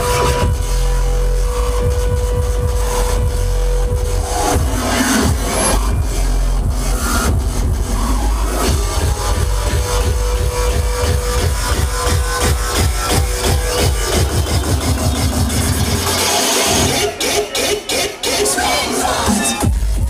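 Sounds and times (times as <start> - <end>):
fast kick drum hardcore music: 0.0 - 20.0.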